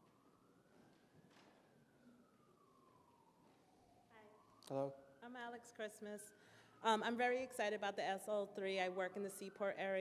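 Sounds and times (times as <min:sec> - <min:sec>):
faint emergency siren wailing: 0:00.0 - 0:10.0.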